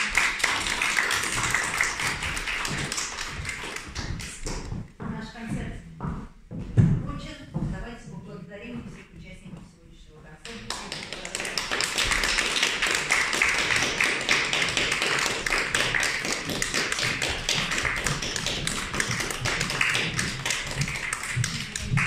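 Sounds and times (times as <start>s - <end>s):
audience applause: 0.0s - 4.4s, 10.8s - 22.0s.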